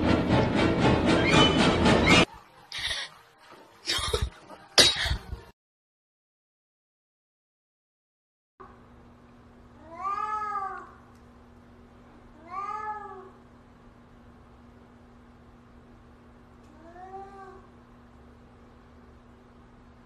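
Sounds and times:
cat meowing in its sleep: 9.8s - 11.0s, 12.4s - 13.4s.

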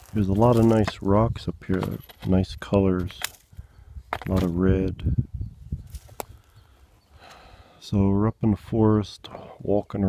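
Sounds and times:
footsteps on forest ground: 0.0s - 2.1s, 5.8s - 6.6s.

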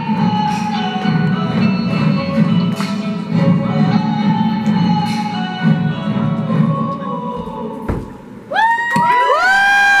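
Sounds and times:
audience whooping and cheering: 8.5s - 10.0s.

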